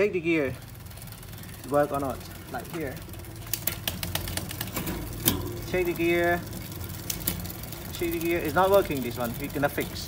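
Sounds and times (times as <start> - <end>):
bicycle chain clicking: 0.0 - 10.0.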